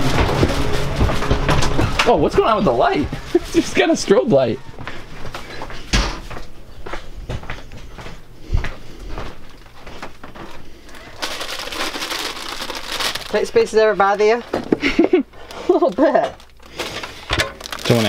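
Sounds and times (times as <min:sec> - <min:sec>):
plastic bag crinkling: 0:09.4 - 0:14.6, 0:15.4 - 0:18.0
objects knocking and thumping: 0:16.2 - 0:17.9.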